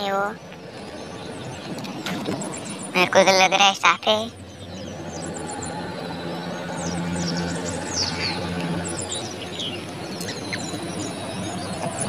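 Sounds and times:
low hum: 0.0 - 12.0
small birds chirping: 0.0 - 12.0.

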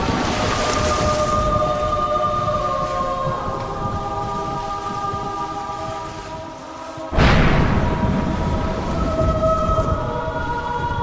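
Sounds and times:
dramatic sustained chord music: 1.4 - 11.0
low thunder-like rumble: 7.1 - 11.0.

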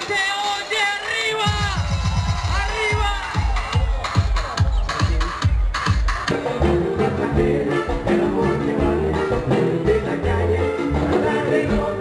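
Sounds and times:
live latin band music: 0.0 - 12.0.

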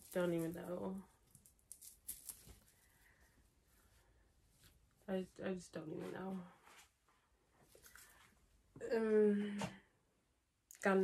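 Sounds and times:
cloth rustling: 0.0 - 5.1.

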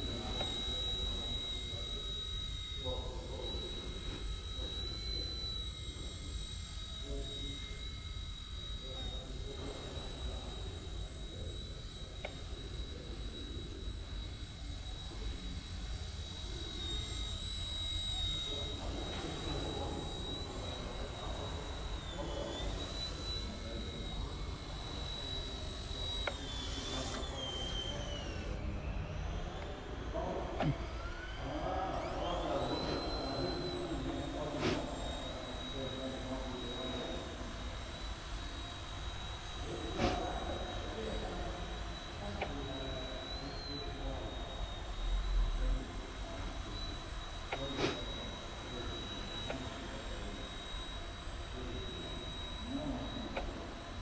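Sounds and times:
toy helicopter motor whine: 0.0 - 54.0.

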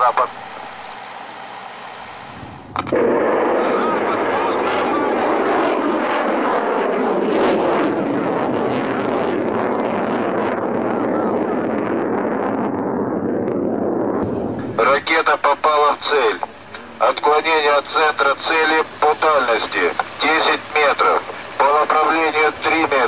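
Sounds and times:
rocket motor ignition crack: 0.4 - 11.0, 11.7 - 23.0
missile launch rushing noise: 0.4 - 23.0.

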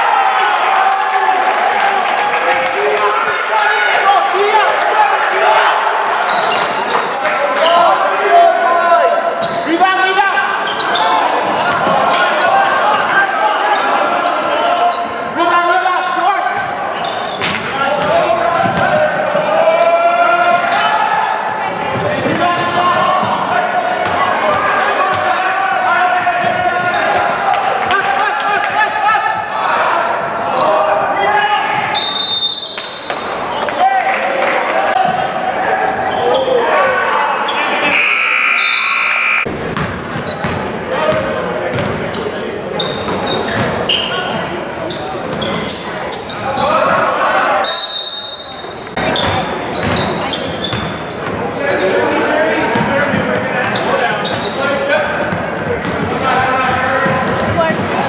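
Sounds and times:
people calling out: 34.7 - 39.5
high steady tones: 37.9 - 39.5.

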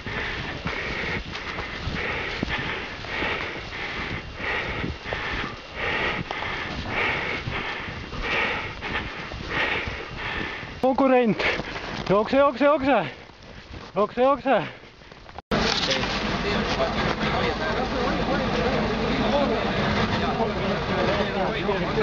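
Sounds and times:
runner breathing hard: 0.0 - 15.4
footsteps in deep snow: 0.0 - 17.1.

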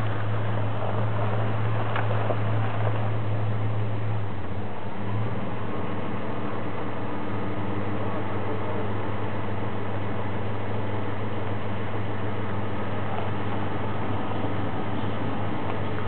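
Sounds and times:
engine running at low revs: 0.0 - 16.0.

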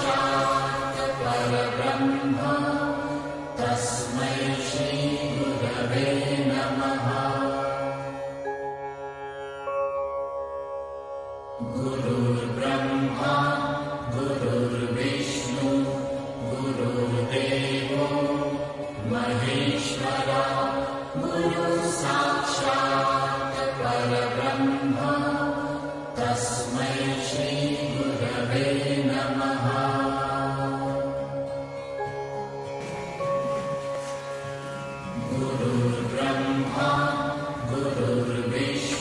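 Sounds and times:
mantra chanting: 0.0 - 3.0, 32.8 - 39.0
steady low drone: 0.0 - 3.7, 32.6 - 39.0.

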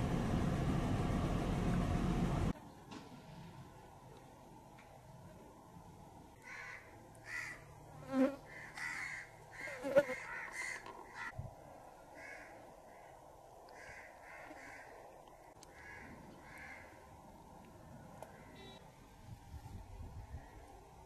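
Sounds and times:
faint background noise: 2.5 - 21.0
bird harsh crow-like calls: 6.4 - 7.7, 8.5 - 11.4, 12.2 - 15.0, 15.6 - 17.0.

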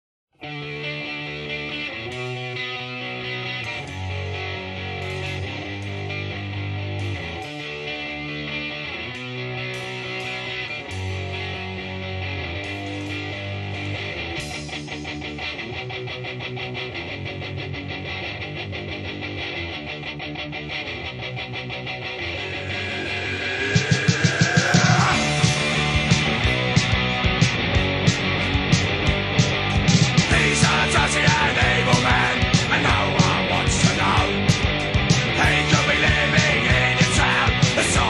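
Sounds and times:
punk rock guitar chords: 0.4 - 38.0
low bass line: 21.8 - 38.0.

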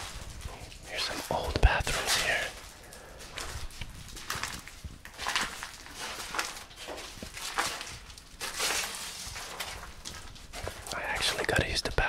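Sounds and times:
footsteps on broken tile debris: 0.0 - 11.5.

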